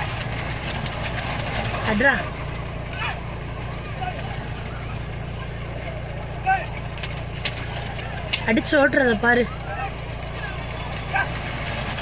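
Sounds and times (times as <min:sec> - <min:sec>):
car engine rumbling: 0:00.0 - 0:12.0
people shouting outside: 0:01.4 - 0:12.0.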